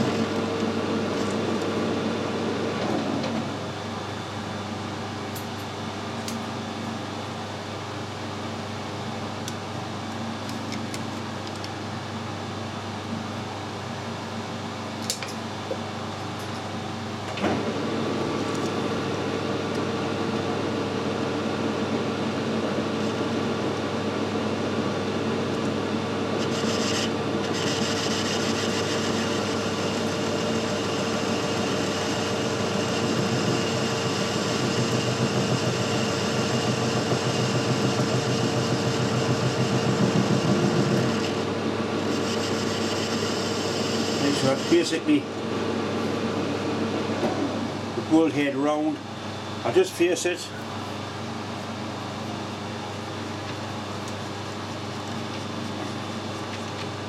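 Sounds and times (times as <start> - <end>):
metal lathe humming: 25.6 - 46.9.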